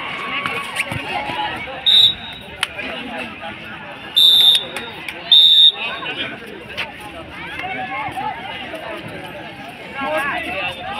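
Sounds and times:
chatter and shouts of people: 0:00.0 - 0:10.9
referee's whistle blasts: 0:01.9 - 0:02.6, 0:04.2 - 0:06.0.

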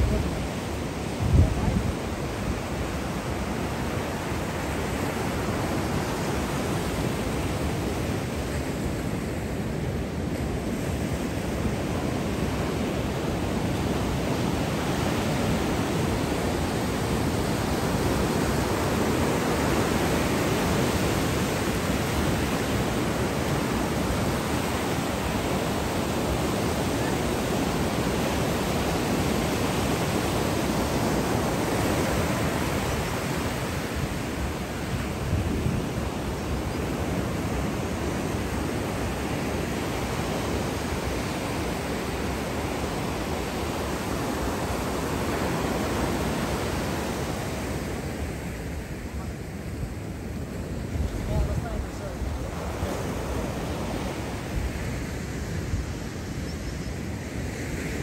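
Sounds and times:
ocean surf washing in: 0:00.0 - 0:58.0.

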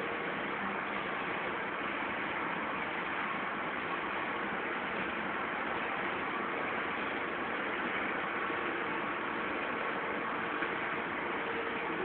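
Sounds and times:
faint steady tones: 0:00.0 - 0:12.0
production line machine hum: 0:00.0 - 0:12.0.

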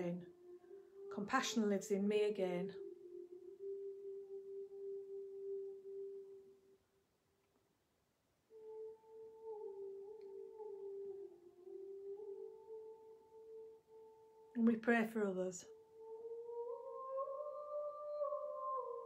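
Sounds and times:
soft slow melody: 0:00.0 - 0:06.8, 0:08.5 - 0:14.9, 0:15.7 - 0:19.0.

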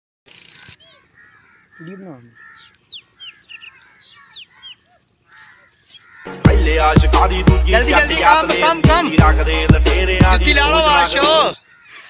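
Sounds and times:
birds calling: 0:00.3 - 0:07.0, 0:10.2 - 0:12.0
music with heavy bass beat: 0:06.3 - 0:11.5.

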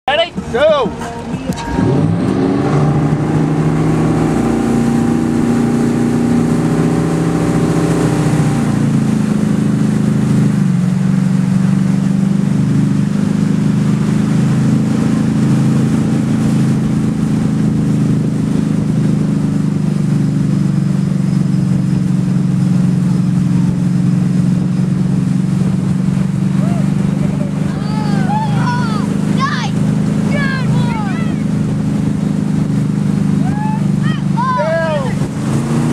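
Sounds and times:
motorboat engine: 0:00.1 - 0:35.9.

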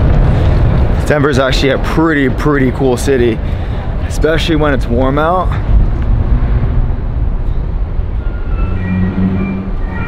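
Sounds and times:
low rumble: 0:00.0 - 0:02.7, 0:04.9 - 0:10.0
wind buffeting microphone: 0:00.0 - 0:10.0
steady tones: 0:05.6 - 0:10.0.

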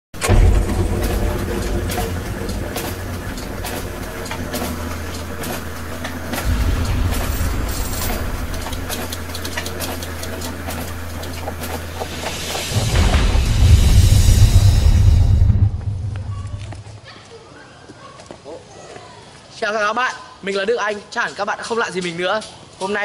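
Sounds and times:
clockwork clicking and ticking: 0:00.2 - 0:14.3
low steady rumble: 0:00.2 - 0:17.0.

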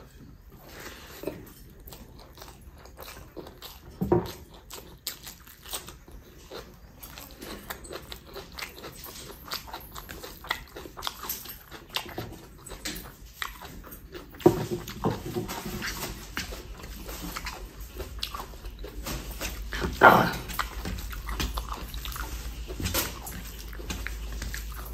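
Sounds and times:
person chewing with mouth clicks: 0:00.5 - 0:24.9.

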